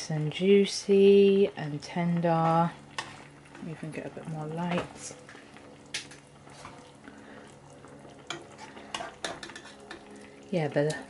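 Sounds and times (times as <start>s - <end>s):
stew simmering: 0.2s - 11.0s.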